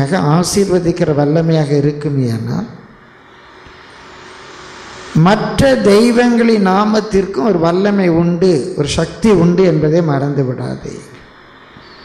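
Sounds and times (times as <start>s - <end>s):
microphone hiss and low rumble: 0.0s - 12.0s.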